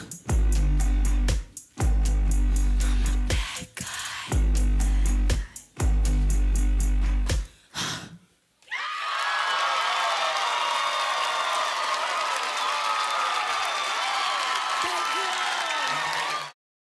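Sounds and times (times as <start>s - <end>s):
live band bass note: 0.3s - 3.3s, 4.4s - 7.4s
audience cheering and screaming: 8.6s - 16.6s.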